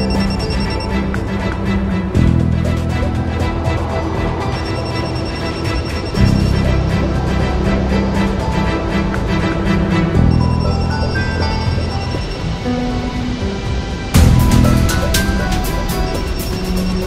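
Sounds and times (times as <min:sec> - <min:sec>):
music with deep sustained chords: 0:00.0 - 0:17.0.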